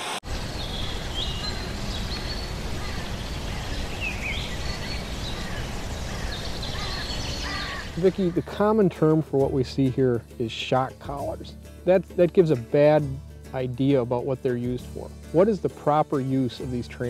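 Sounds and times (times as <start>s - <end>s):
bird calls and chirps: 0.3s - 8.6s.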